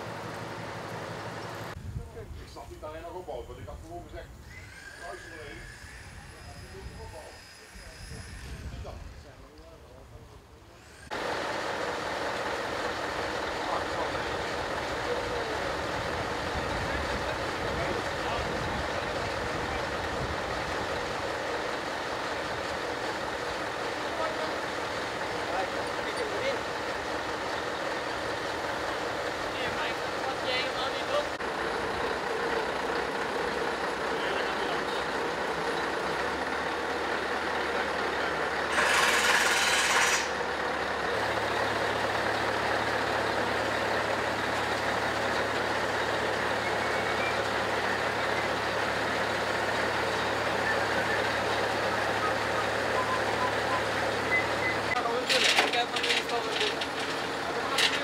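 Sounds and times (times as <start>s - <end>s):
truck engine running: 0.0s - 4.0s, 11.0s - 58.0s.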